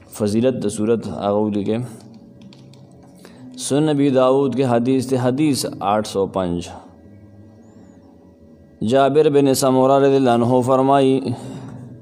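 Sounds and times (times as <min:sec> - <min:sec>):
faint steady hum: 0:00.0 - 0:12.0
man speaking: 0:03.6 - 0:06.9.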